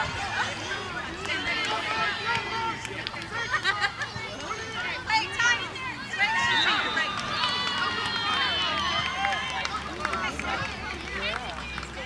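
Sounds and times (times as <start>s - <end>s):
children calling and shouting: 0.0s - 12.0s.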